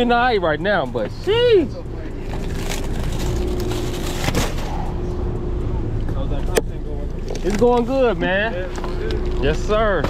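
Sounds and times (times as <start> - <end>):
steady low rumble: 0.0 - 10.0
plastic wrap crackling: 2.0 - 4.6.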